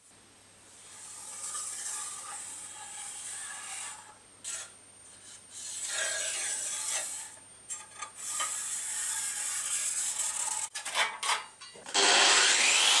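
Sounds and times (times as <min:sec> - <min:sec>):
scriber scratching sheet metal: 0:00.8 - 0:11.5.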